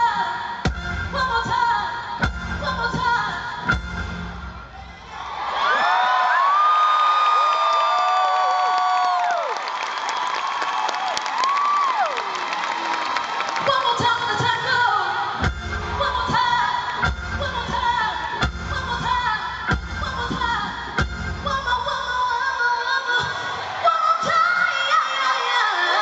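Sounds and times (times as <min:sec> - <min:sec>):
band with drums playing: 0:00.7 - 0:01.2, 0:02.2 - 0:04.6, 0:15.4 - 0:21.6
crowd cheering and whooping: 0:04.7 - 0:14.1.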